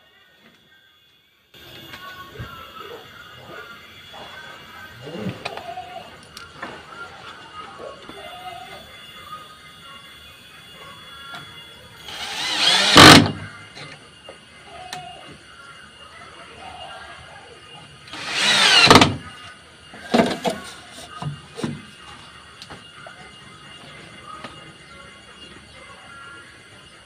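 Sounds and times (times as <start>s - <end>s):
cordless drill driving screws: 12.1s - 13.4s, 18.1s - 19.2s.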